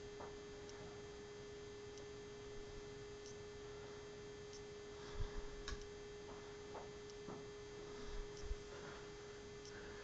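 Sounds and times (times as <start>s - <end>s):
faint steady hum: 0.0s - 10.0s.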